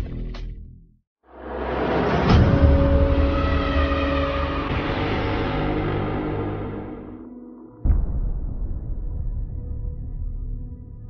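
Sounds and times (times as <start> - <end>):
steady drone tones: 1.3 - 11.0
deep rumble: 7.8 - 11.0.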